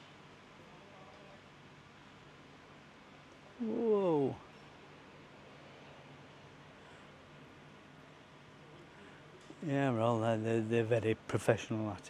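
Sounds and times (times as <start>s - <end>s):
faint outdoor background: 0.0s - 12.0s
man exclaiming: 3.6s - 4.4s.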